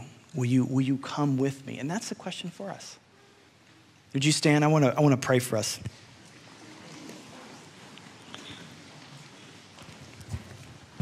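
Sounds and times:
rustling and shuffling: 5.7s - 11.0s.

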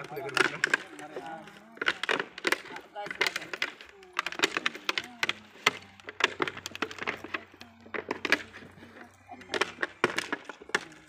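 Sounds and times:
sharp dry clicks and crackles: 0.0s - 11.0s.

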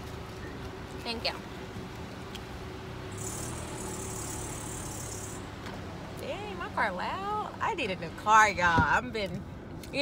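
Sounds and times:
car engine humming: 0.0s - 10.0s
high hiss: 3.1s - 5.5s.

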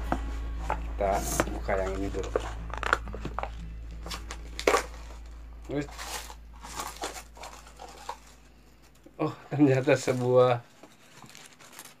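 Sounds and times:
toy wrapping crinkling and tearing: 1.8s - 12.0s.

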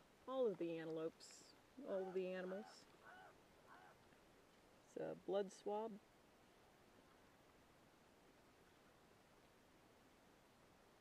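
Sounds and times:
faint short pitched calls: 2.6s - 4.0s.

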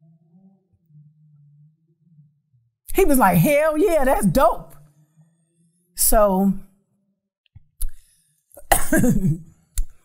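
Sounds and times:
woman coughing: 8.6s - 9.5s.

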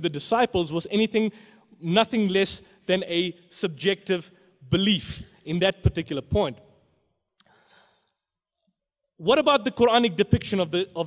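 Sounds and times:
soft breath: 7.4s - 8.2s.

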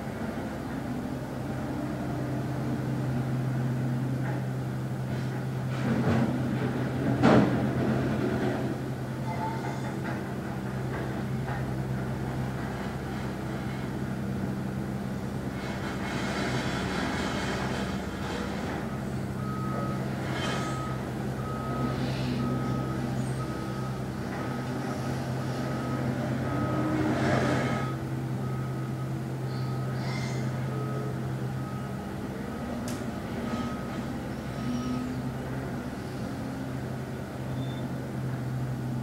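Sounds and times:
vehicle reversing alarm beeping: 18.0s - 38.0s.

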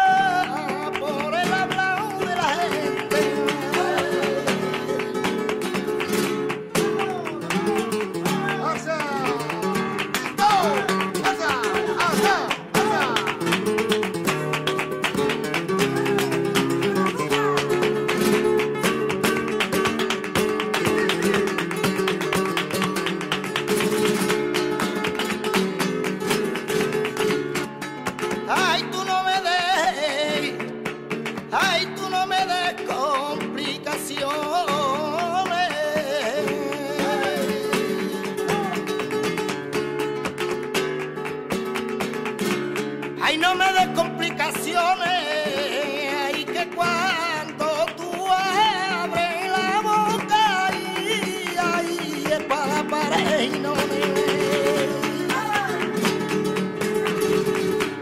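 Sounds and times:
person singing: 0.0s - 5.3s, 6.8s - 13.5s, 15.8s - 18.0s, 28.5s - 30.7s, 31.5s - 38.9s, 43.2s - 56.0s
flamenco guitar playing: 0.0s - 58.0s.

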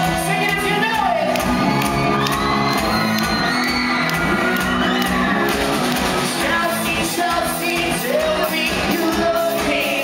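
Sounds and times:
crowd shouting and cheering: 0.0s - 10.0s
drum beat: 0.0s - 10.0s
electric guitars: 0.0s - 10.0s
person singing: 6.2s - 10.0s.

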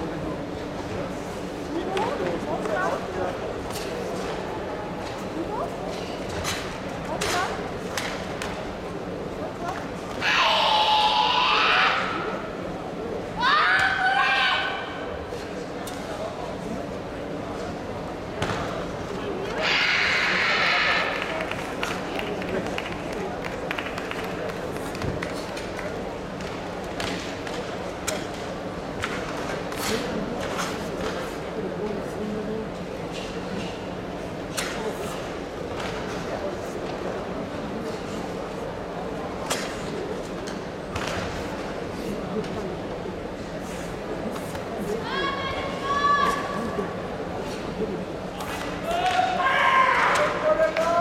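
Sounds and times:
background voices in sports hall: 0.0s - 51.0s.

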